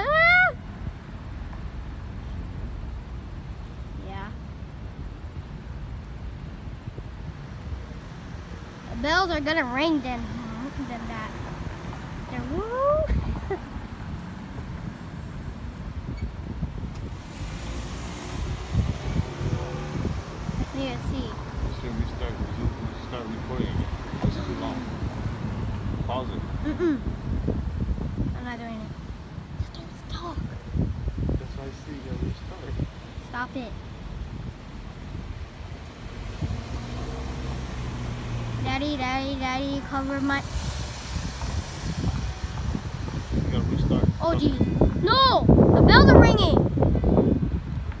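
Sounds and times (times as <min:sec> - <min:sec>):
low rumble of street traffic: 0:00.0 - 0:48.0
vehicle engine humming: 0:00.0 - 0:48.0
wind on microphone: 0:03.4 - 0:48.0.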